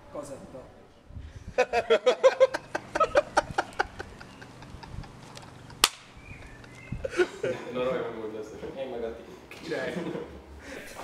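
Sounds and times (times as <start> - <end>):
sharp snap: 5.8 - 6.2.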